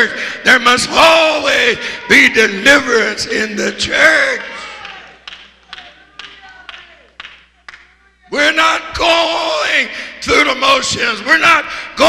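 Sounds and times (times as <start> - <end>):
sharp claps in a hall: 4.6 - 8.1.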